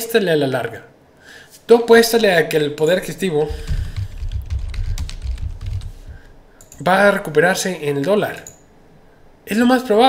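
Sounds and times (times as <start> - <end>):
computer keyboard typing: 3.4 - 6.9.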